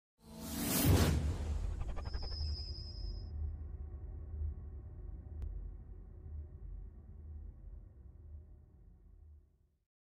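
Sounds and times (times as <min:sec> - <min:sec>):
swoosh: 0:00.2 - 0:03.3.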